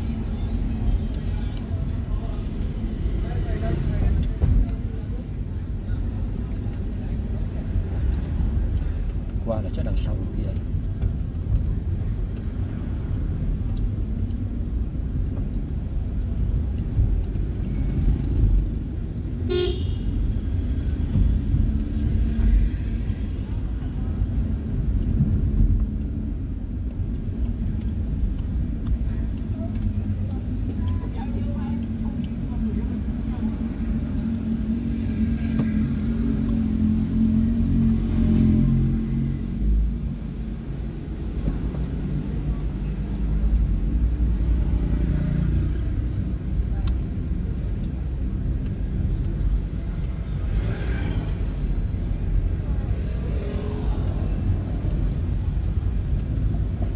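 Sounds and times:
car engine and road rumble: 0.0s - 56.9s
vehicle horn beeping: 19.5s - 20.1s.

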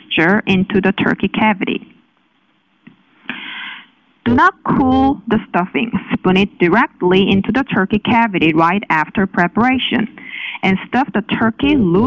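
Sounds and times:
person speaking: 0.0s - 2.0s, 4.2s - 12.0s.

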